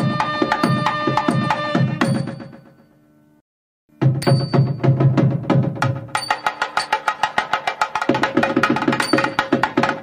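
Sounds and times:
drum fast crisp strokes: 0.0s - 2.9s, 3.9s - 10.0s.

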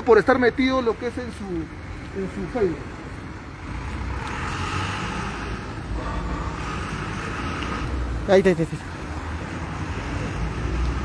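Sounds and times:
vehicle engines rumbling: 0.0s - 11.0s.

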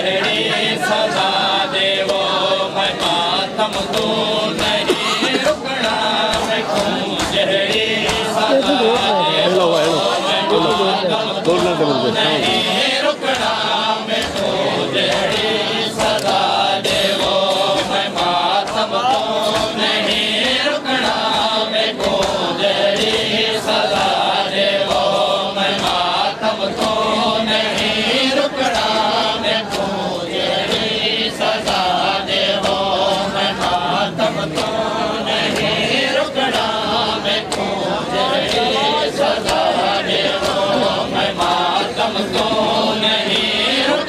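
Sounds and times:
men chanting in unison: 0.0s - 44.0s.

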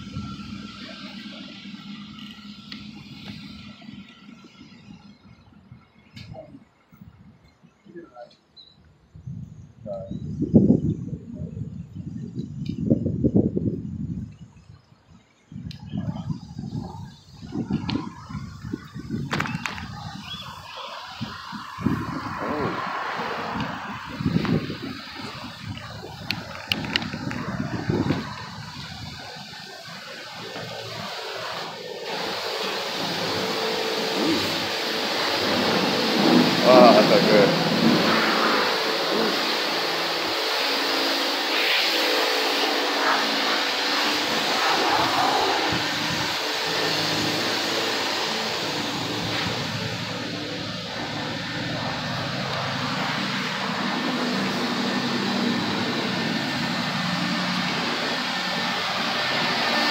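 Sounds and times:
wind buffeting microphone: 9.0s - 39.5s, 42.6s - 59.9s
steady hiss: 19.8s - 59.9s.

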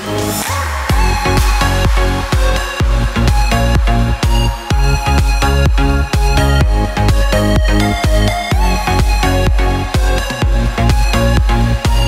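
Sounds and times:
electronic music with steady beat: 0.0s - 12.0s.

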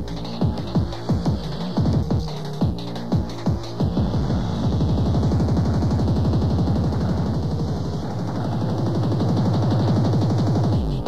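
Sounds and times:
hardcore tekno music: 0.0s - 11.0s.

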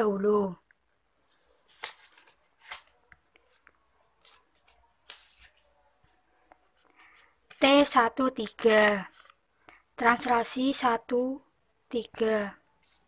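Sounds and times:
paper cards rustling: 1.2s - 9.8s.

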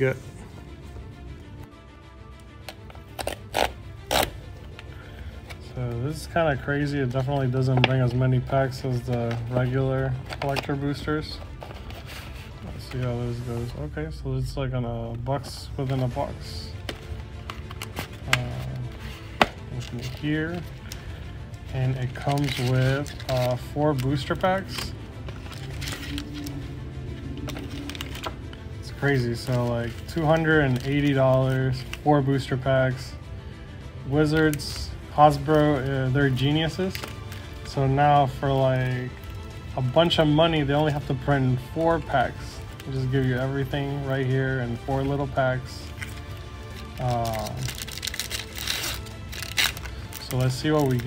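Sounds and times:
background music with bass: 0.0s - 51.0s
foil packs rustling and clicking: 21.8s - 26.5s, 45.8s - 51.0s.

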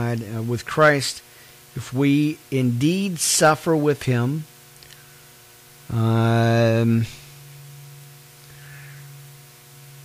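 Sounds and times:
faint static hiss: 0.0s - 10.0s
low electrical hum: 0.0s - 10.0s.

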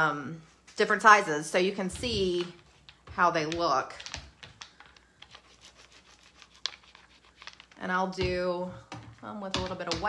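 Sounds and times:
plastic rustling: 2.0s - 8.2s.

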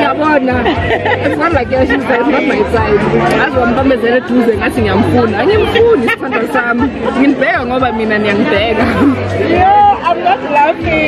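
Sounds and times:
women talking: 0.0s - 11.0s.

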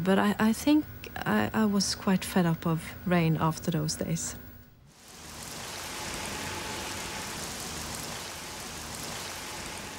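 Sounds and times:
steady rain falling: 4.9s - 9.9s.

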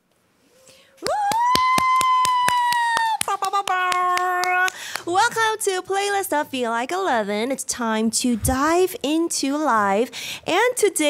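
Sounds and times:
high-pitched cheering woo: 0.6s - 4.7s
hand clapping: 1.0s - 5.1s.

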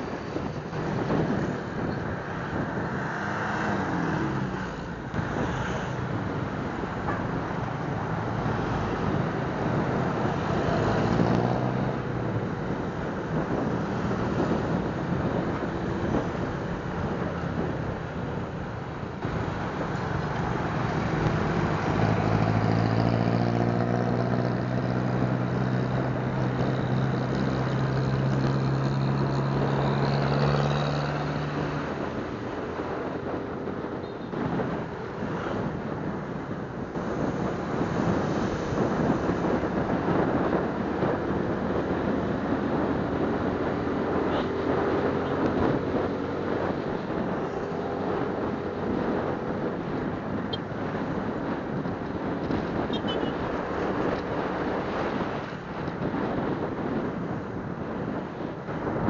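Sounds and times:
wind and road noise: 0.0s - 59.0s.

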